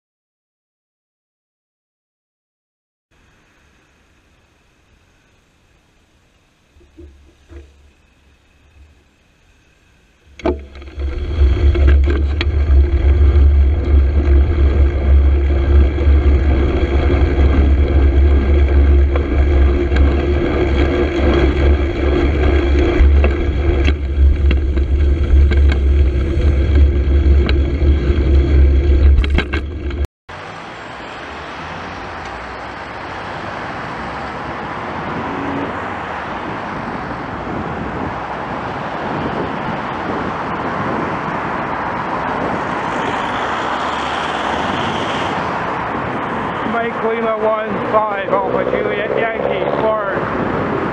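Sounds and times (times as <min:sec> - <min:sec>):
traffic hiss: 0:03.1 - 0:10.4, 0:30.3 - 0:38.6
traffic rumble: 0:03.2 - 0:50.9.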